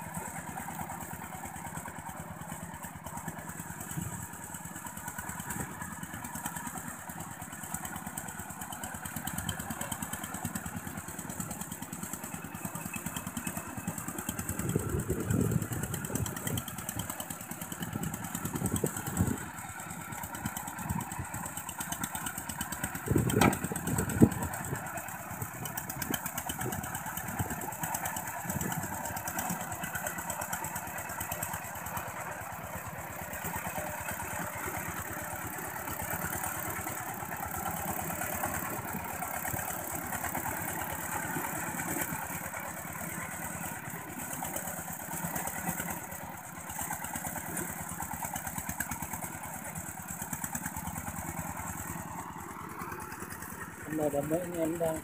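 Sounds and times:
diesel tractor engine chugging: 0.0s - 55.0s.

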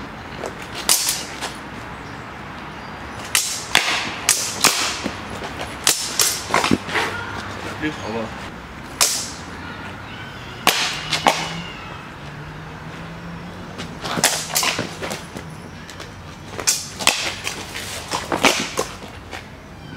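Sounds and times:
swords and bucklers clashing: 14.0s - 15.0s.

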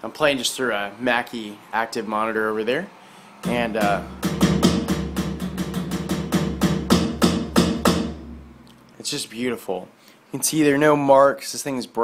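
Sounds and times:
drumstick hitting mesh pad: 3.4s - 8.7s
electronic drum tom hits: 3.4s - 8.7s.

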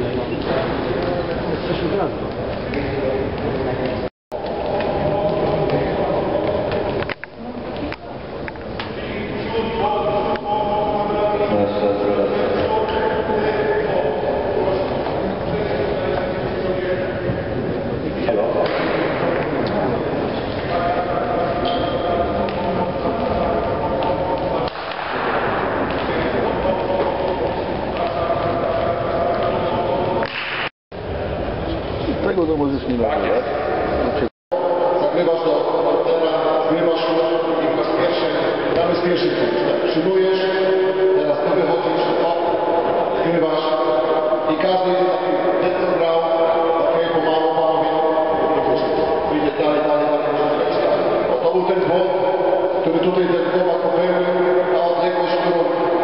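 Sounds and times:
indistinct voices echoing: 0.0s - 56.0s.

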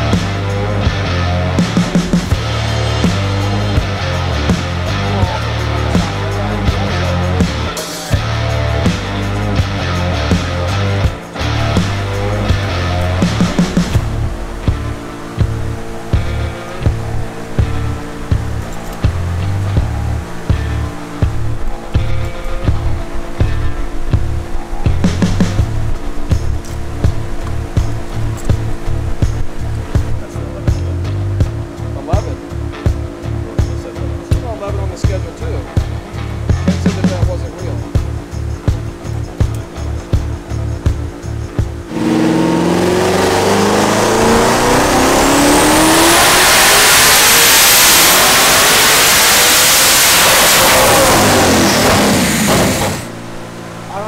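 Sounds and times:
backing music with steady beat: 0.0s - 53.1s
car engine revving at full throttle: 0.0s - 54.0s.

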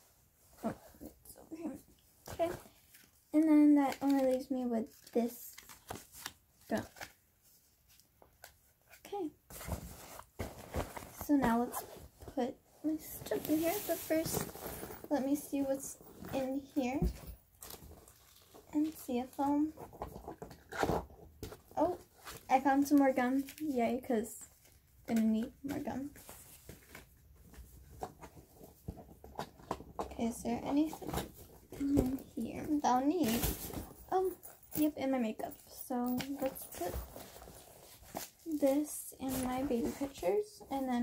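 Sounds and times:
rustling in fabric backpack: 9.5s - 20.2s, 31.0s - 41.0s.

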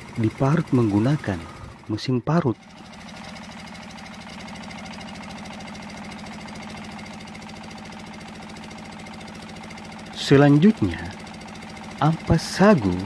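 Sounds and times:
grating machine running: 0.0s - 13.0s.

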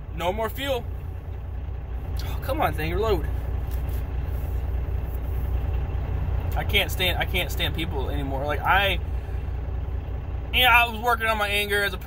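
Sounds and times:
road noise: 0.0s - 12.0s
truck engine drone: 0.0s - 12.0s.

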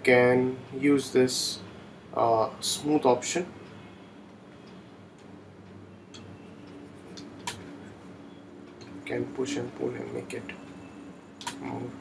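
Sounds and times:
low room hum: 0.0s - 12.0s
computer mouse clicks: 6.1s - 7.6s, 11.4s - 11.7s.

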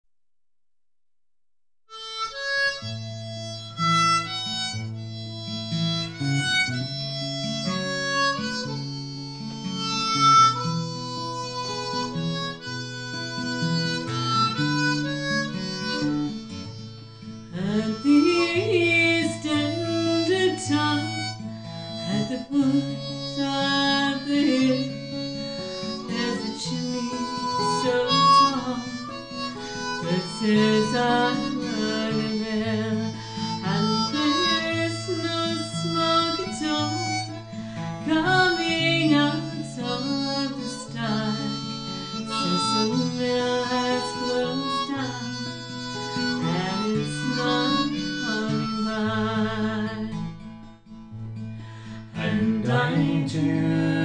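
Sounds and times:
acoustic guitar strumming: 1.9s - 54.0s
harmonica melody: 1.9s - 54.0s.

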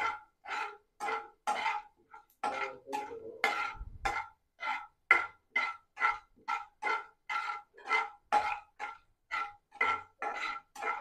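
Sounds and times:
steel ladle scraping a pan: 0.0s - 11.0s.

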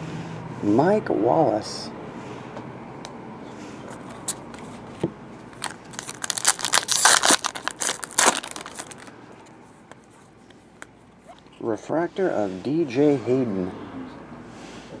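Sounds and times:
foil pack tearing and crinkling: 5.6s - 9.1s.

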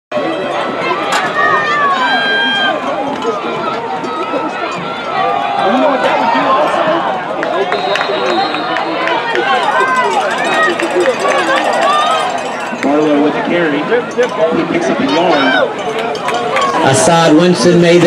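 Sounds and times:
crowd talking and shouting: 0.1s - 18.0s.

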